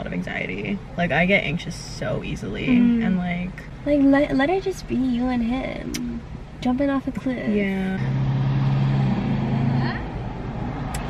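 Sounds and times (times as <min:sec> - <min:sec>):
woman humming: 0:02.7 - 0:03.3, 0:05.7 - 0:06.2.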